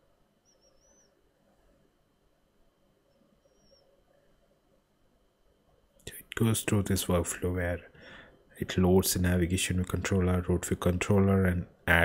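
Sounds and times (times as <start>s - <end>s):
faint high chirps: 0.0s - 6.0s.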